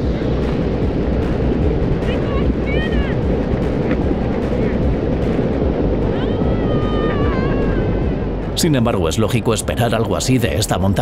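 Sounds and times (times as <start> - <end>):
avalanche deep rumble: 0.0 - 11.0
faint high voices exclaiming: 6.1 - 8.0.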